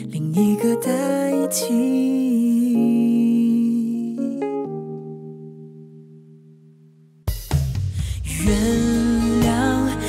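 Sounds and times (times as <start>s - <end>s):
soft backing music: 7.3s - 10.0s.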